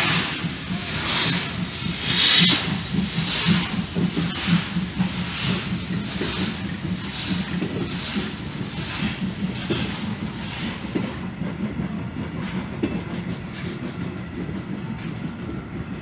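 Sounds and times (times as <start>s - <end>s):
steam locomotive chuffing: 0.0s - 16.0s
train wheels clattering over rail joints: 0.0s - 16.0s.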